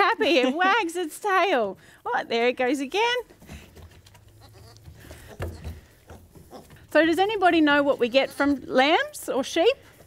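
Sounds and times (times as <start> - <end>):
lamb bleating: 4.3 - 6.8, 8.0 - 8.7.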